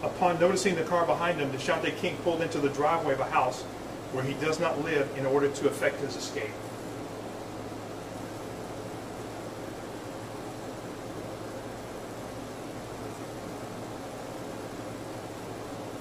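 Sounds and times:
constant low hum: 0.0s - 16.0s
even hiss: 0.0s - 16.0s.

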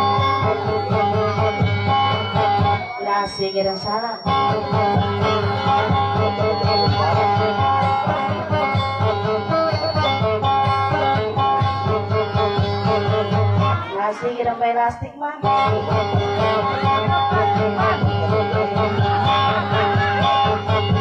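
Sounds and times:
sustained bass: 0.0s - 13.9s, 15.4s - 21.0s
acoustic guitar playing: 0.0s - 14.6s, 15.4s - 21.0s.

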